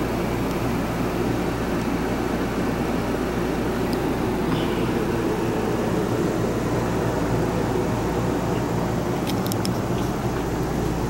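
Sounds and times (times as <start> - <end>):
low mechanical hum with rushing: 0.0 - 11.0.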